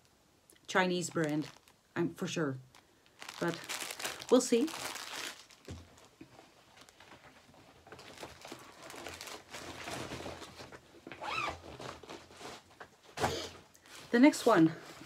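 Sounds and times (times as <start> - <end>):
plastic bags rustling and crinkling: 0.0 - 15.0.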